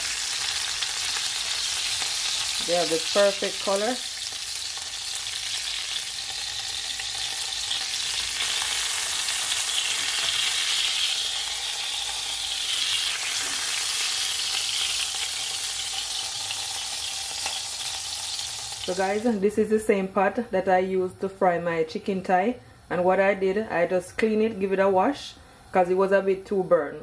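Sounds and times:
chicken sizzling in oil: 0.0s - 19.3s.

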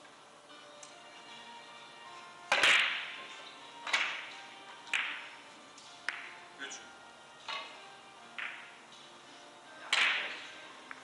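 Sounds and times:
cue striking ball: 2.5s - 3.2s, 3.9s - 4.3s, 4.9s - 5.4s, 6.0s - 6.4s, 7.5s - 8.8s, 9.9s - 10.4s
billiard balls clicking together: 3.8s - 6.4s, 7.5s - 8.8s.

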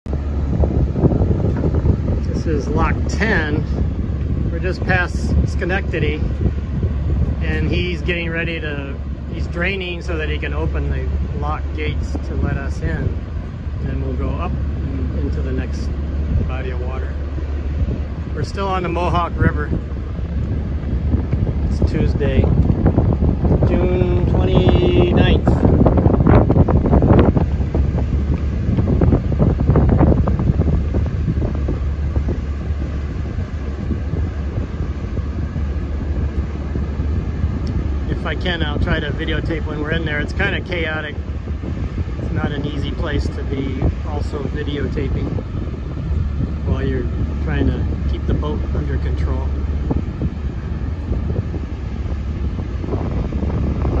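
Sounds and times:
small boat engine rumble: 0.0s - 54.0s
wind buffeting microphone: 0.0s - 54.0s.

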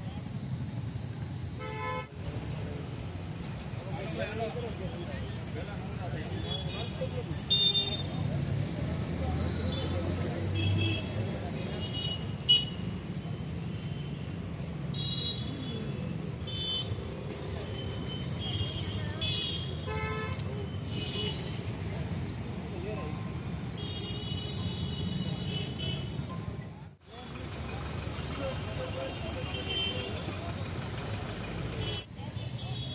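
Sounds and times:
road traffic: 0.0s - 32.9s
voices: 2.2s - 14.0s, 14.9s - 32.9s.

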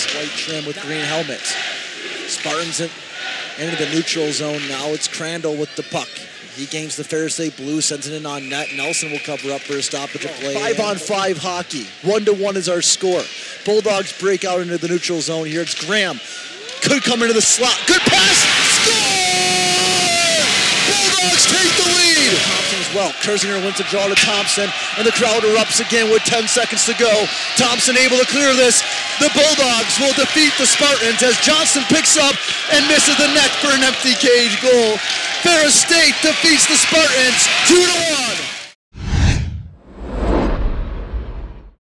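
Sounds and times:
arena crowd cheering: 0.0s - 12.8s, 13.8s - 38.8s
announcer shouting excitedly: 10.5s - 11.0s, 17.4s - 38.5s
low rumble: 39.0s - 41.8s
whoosh sound effect: 39.0s - 41.8s.

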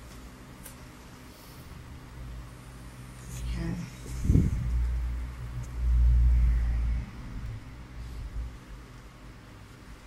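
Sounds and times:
deep low rumble: 3.4s - 8.8s.

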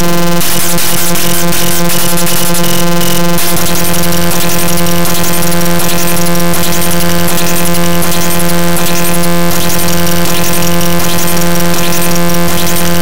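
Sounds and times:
harsh dense electronic music: 0.0s - 13.0s.

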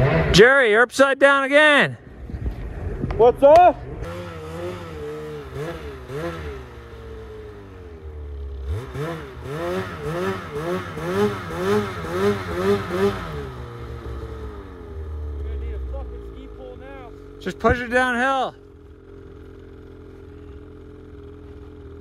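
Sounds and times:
snowmobile engine revving: 0.0s - 1.8s, 3.9s - 21.7s.

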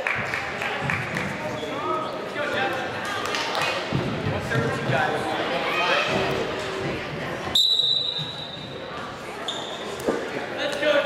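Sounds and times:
spectators chattering in a gym: 0.0s - 11.0s
referee's whistle blasts: 7.6s - 8.6s.

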